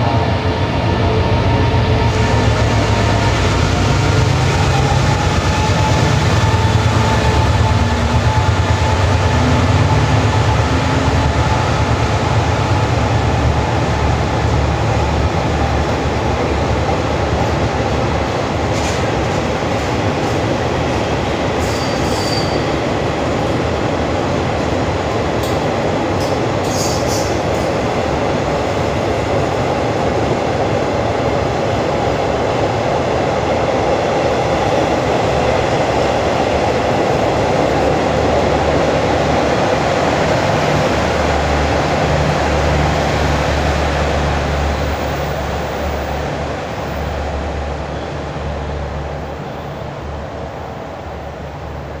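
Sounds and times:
train wheels rumbling on rails: 0.0s - 52.0s.

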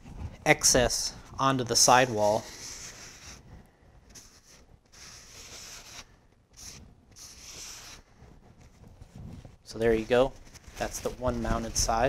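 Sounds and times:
paper towel wiping tire: 4.2s - 8.1s, 9.7s - 12.0s.

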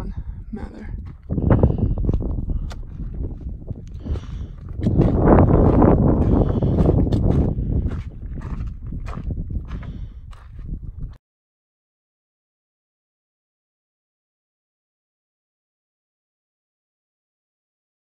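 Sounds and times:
low rumble on microphone: 0.0s - 11.2s
footsteps on gravel: 0.8s - 11.2s.

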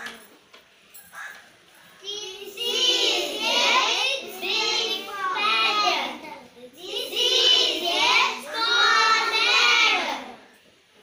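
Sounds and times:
children singing together: 2.0s - 10.5s.

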